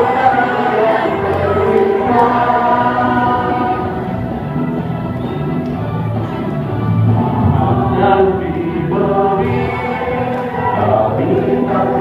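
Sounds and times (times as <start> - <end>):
choir singing: 0.0 - 5.3, 7.0 - 12.0.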